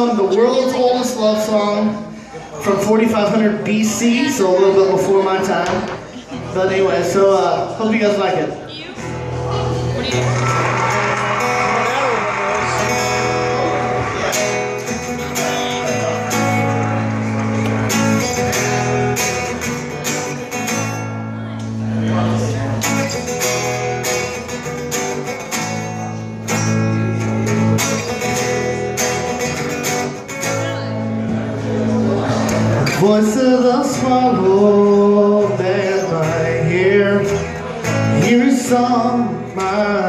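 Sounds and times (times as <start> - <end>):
acoustic guitar strumming: 0.0 - 40.0.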